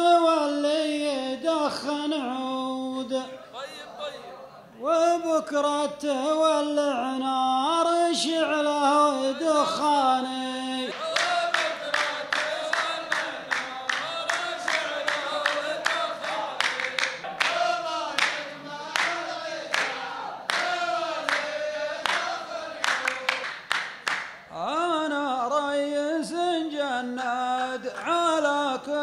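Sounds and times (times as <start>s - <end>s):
men chanting in unison: 5.0s - 23.6s
rhythmic hand claps: 10.8s - 24.5s.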